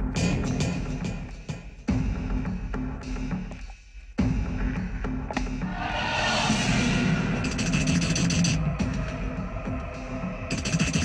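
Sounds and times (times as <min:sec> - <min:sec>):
film background music: 0:00.0 - 0:11.0
steady low tones: 0:05.6 - 0:10.9
wash of high noise: 0:05.7 - 0:08.4.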